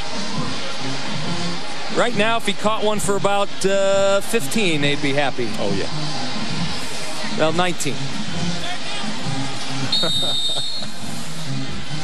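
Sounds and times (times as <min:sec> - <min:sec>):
stadium crowd noise: 0:00.0 - 0:12.0
high whistle: 0:09.9 - 0:10.9.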